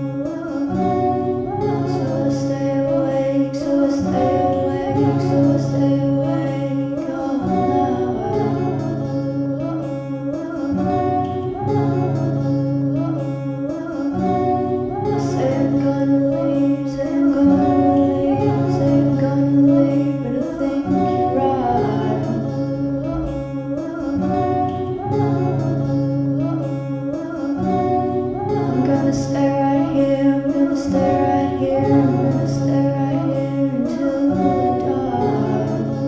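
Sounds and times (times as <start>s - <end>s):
plucked acoustic guitar: 0.0s - 36.0s.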